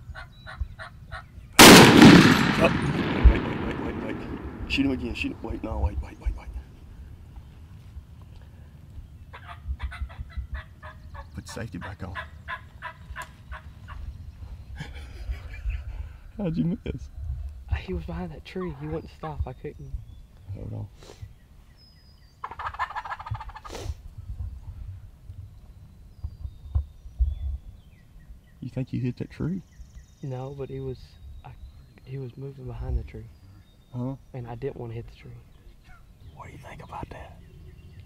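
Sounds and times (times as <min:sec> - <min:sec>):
small birds chirping: 0:00.0 - 0:38.0
turkey clucking: 0:09.3 - 0:14.0, 0:22.4 - 0:23.7.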